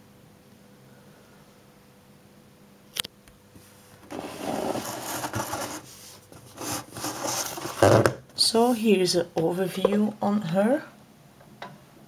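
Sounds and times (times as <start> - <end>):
cardboard scraping on wood: 4.0 - 8.2.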